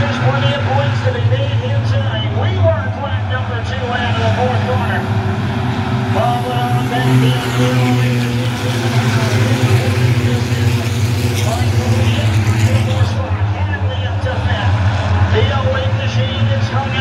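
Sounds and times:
stock car engines racing: 0.0 - 17.0
announcer over loudspeakers: 6.1 - 14.7.

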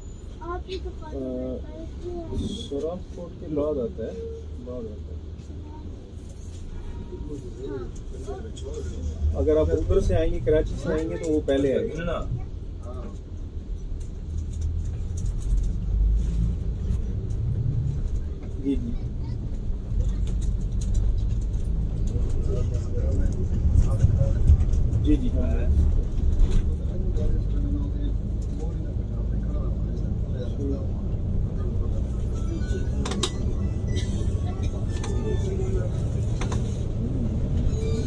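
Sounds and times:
coach engine and tyres droning: 0.0 - 38.0
faint voices: 16.8 - 38.0.

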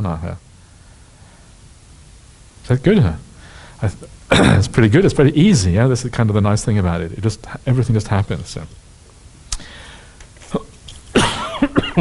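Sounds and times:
man coughing: 4.3 - 4.7, 11.1 - 12.0.

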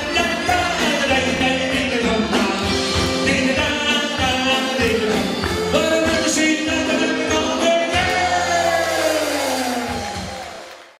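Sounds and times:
live band final chord ringing: 0.0 - 10.9.

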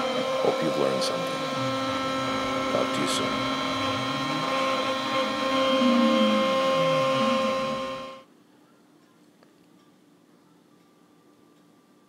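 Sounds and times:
end mill cutting aluminum: 0.0 - 8.2
router spindle whining: 0.0 - 8.2.

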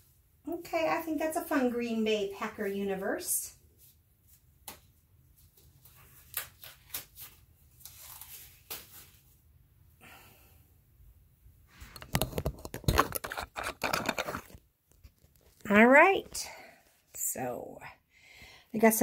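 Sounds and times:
scraping and crinkling: 5.4 - 9.3, 11.8 - 16.2
camera handling clicks and rustles: 11.9 - 15.5.

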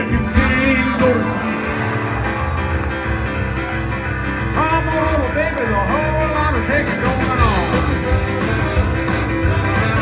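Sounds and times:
live country band music: 0.0 - 10.0.

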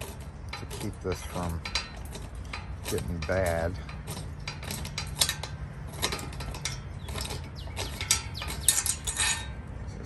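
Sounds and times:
bolt threads clicking and scraping: 0.0 - 10.0.

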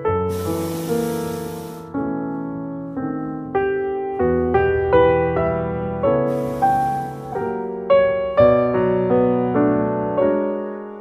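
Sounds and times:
piano music: 0.0 - 11.0
propane burner hissing blast: 0.3 - 1.9, 6.2 - 7.6.

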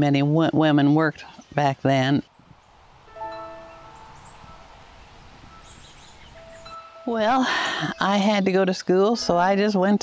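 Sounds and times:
faint steady hiss: 0.0 - 9.5
soft chime-like notes: 2.9 - 8.1.

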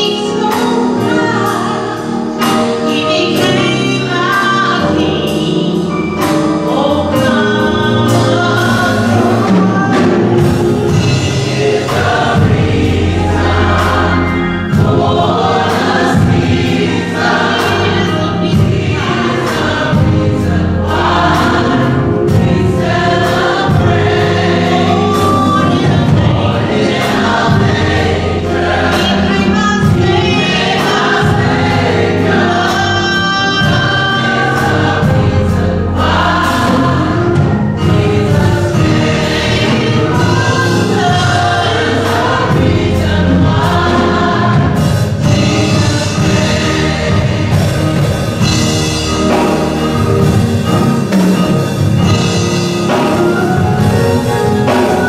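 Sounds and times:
gospel choir singing: 0.0 - 55.0.

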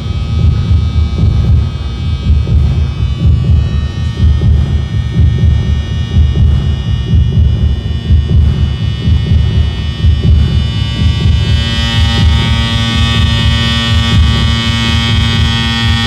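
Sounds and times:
buzzing hum of steady tones: 0.0 - 16.0
pulsing low rumble: 0.0 - 16.0.

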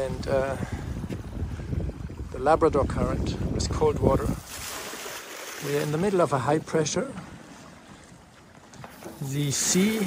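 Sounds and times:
water against hull: 0.0 - 10.0.

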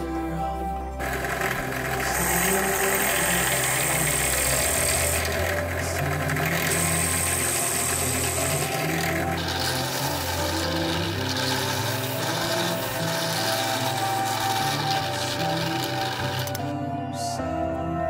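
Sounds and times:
background music: 0.0 - 18.0
drill press boring wood: 1.0 - 16.8.

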